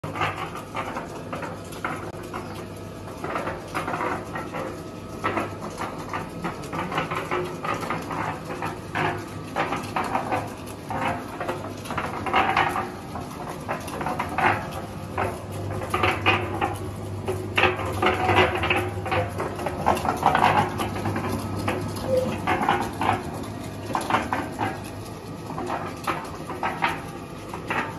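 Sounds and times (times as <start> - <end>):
concrete mixer motor hum: 0.0 - 27.9
knocks and clatter in mixer: 0.0 - 27.9.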